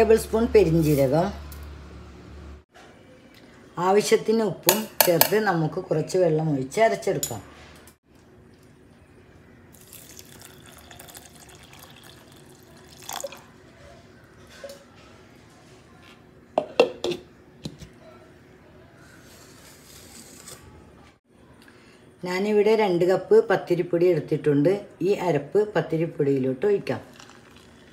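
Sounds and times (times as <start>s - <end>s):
water running: 9.8s - 13.6s, 27.1s - 27.9s.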